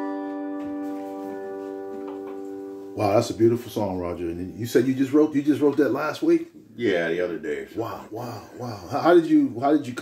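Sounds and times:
resonator guitar chord ringing: 0.0 - 5.3.

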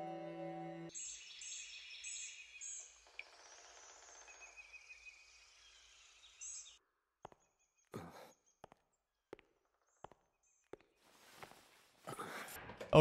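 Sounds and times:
birds chirping: 0.9 - 11.0.

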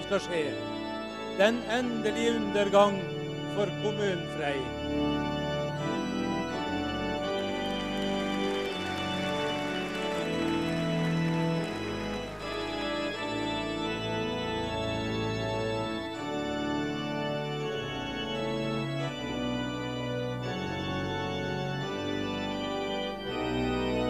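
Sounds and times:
organ chords: 0.0 - 24.0.

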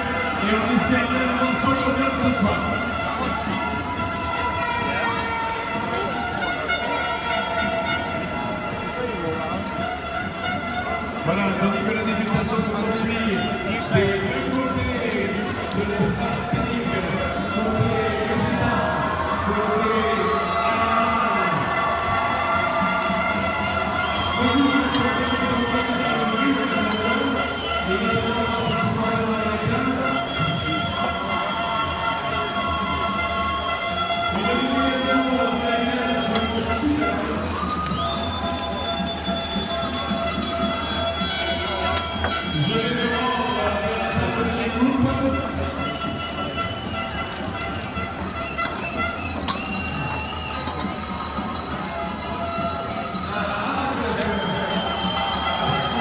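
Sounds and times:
crowd murmuring: 0.0 - 56.0
music with long held tones: 0.0 - 56.0.

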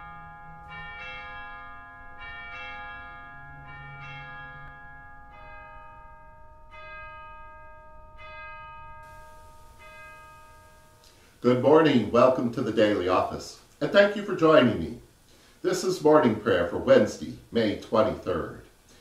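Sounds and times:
bells struck ringing: 0.0 - 13.4.

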